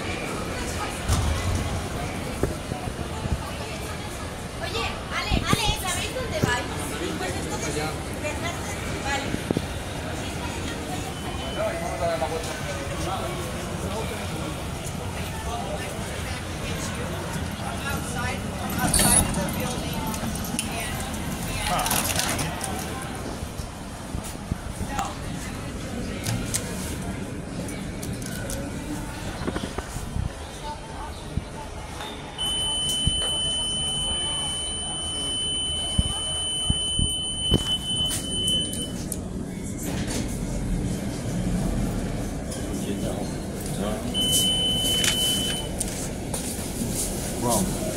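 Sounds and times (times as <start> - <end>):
faint voices: 0.0 - 47.9
elevator doors sliding open: 18.6 - 20.9
elevator buzzer high tone: 32.4 - 38.9.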